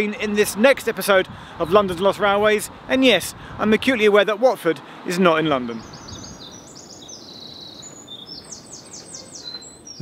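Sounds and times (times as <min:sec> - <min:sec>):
outdoor background noise: 0:00.0 - 0:10.0
small birds chirping: 0:04.8 - 0:10.0.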